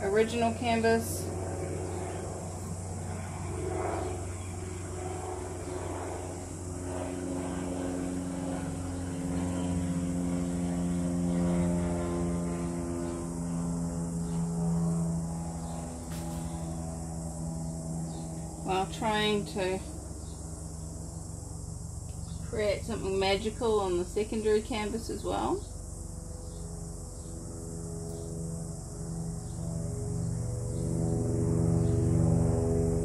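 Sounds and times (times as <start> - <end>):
propeller aircraft engine drone: 0.0 - 33.0.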